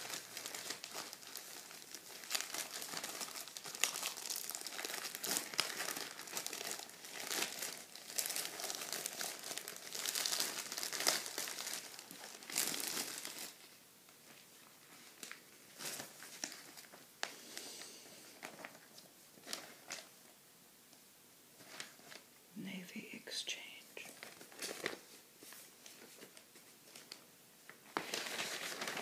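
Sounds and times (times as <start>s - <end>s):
plastic bag crinkling: 0.0s - 20.1s, 24.0s - 27.2s, 27.8s - 29.0s
glossy paper rustling: 27.8s - 29.0s.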